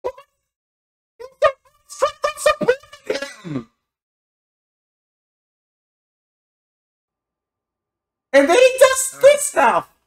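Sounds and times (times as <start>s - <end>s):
person clearing throat: 3.1s - 3.8s.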